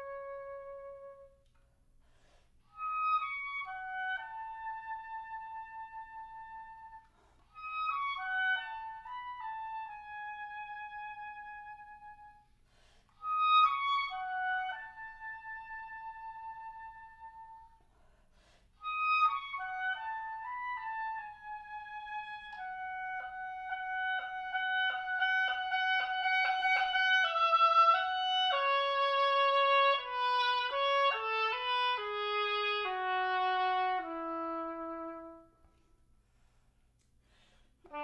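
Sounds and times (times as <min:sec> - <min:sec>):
solo oboe playing: 0:00.0 - 0:01.7, 0:02.7 - 0:18.0, 0:18.8 - 0:36.1.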